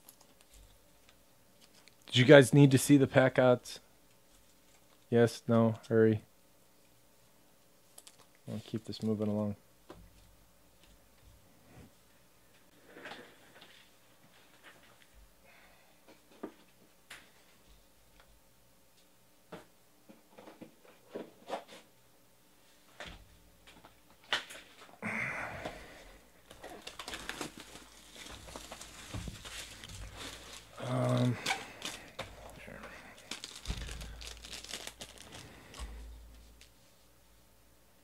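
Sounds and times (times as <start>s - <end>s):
plastic wrap crinkling: 26.4s - 36.8s.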